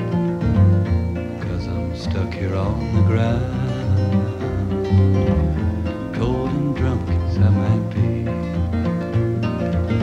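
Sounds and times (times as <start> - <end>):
acoustic guitar plucking: 0.0 - 10.0
person singing: 1.4 - 8.7.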